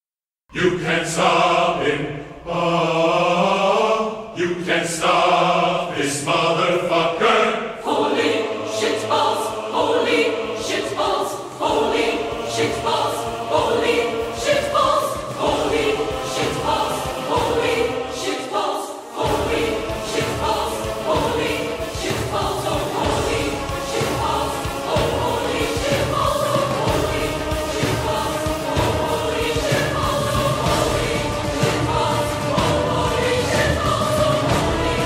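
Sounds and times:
choir singing: 0.5s - 35.0s.

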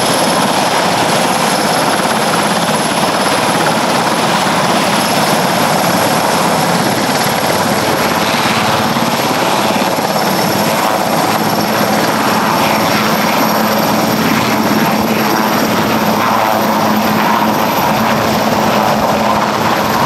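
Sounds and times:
helicopter rotor turning: 0.0s - 20.0s
turbines whining: 0.0s - 20.0s.

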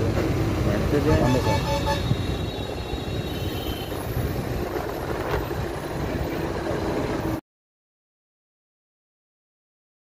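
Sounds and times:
road traffic rumble: 0.0s - 7.4s.

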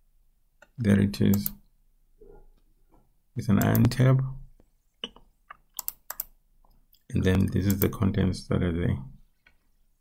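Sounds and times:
keyboard and mouse clicks: 0.6s - 1.6s, 3.5s - 4.0s, 5.0s - 8.0s.

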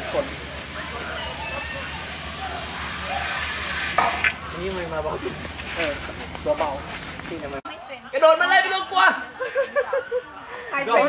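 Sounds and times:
pulley rolling on steel cable: 0.0s - 7.4s.

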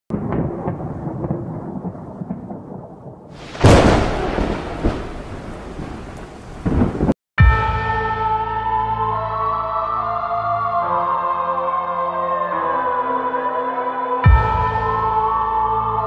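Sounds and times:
rain: 0.1s - 7.2s
rumbling thunder: 0.1s - 7.2s
thunder crash: 0.1s - 7.2s.

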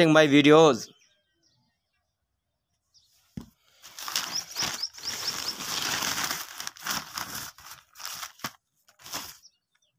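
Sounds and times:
small bird chirping: 0.8s - 6.7s, 9.1s - 9.9s
loud rough rustling: 3.8s - 9.4s.

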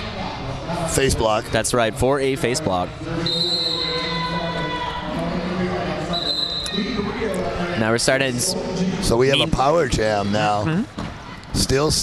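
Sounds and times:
echoing hubbub of crowd and skaters: 0.0s - 12.0s.

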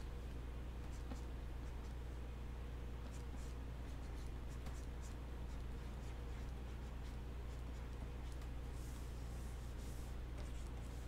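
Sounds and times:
low electrical hum: 0.0s - 11.0s
stylus scratching on tablet: 3.0s - 11.0s.

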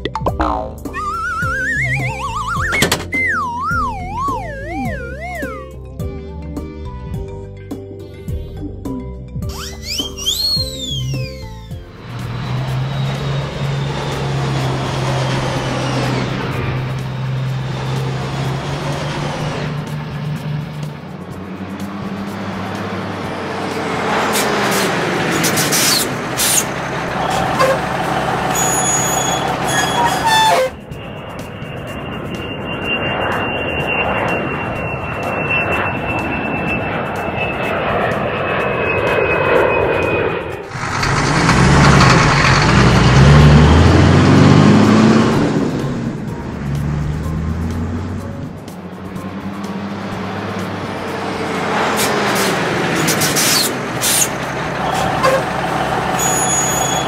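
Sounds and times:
cartoon truck engine running: 0.0s - 5.8s, 9.5s - 30.8s, 40.6s - 57.0s
background music: 0.0s - 12.8s, 44.4s - 51.6s.

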